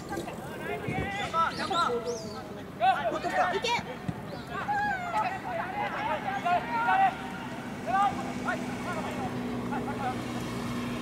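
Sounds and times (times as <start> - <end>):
distant players shouting: 0.2 - 11.0.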